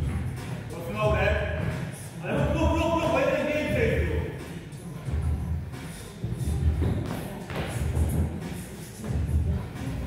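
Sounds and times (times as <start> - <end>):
background music with heavy bass: 0.0 - 10.0
thuds on rubber gym flooring: 6.7 - 8.4.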